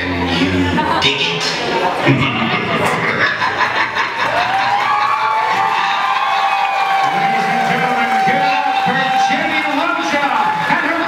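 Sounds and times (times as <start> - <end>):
audience cheering: 3.6 - 11.0.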